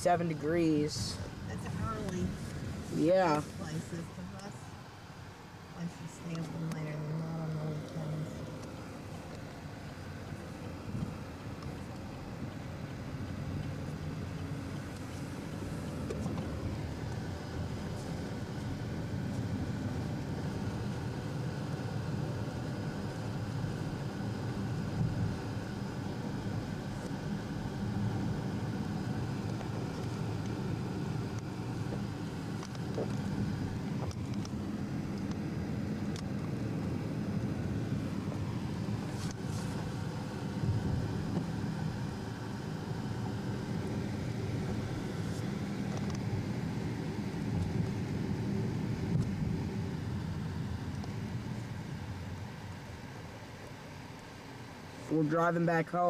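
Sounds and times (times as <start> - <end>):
car engine and tyre rumble: 0.0 - 56.0.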